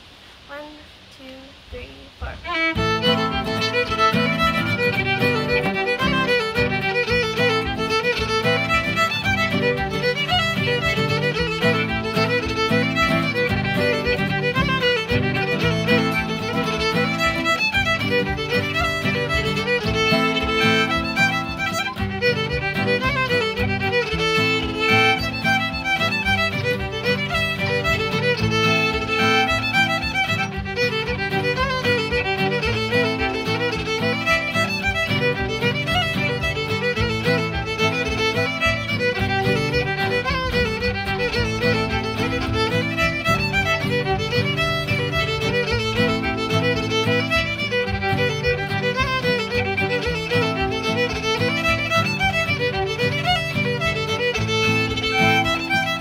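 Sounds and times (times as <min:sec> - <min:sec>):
strummed acoustic guitar: 0:01.8 - 0:56.0
fiddle playing a folk tune: 0:02.2 - 0:56.0.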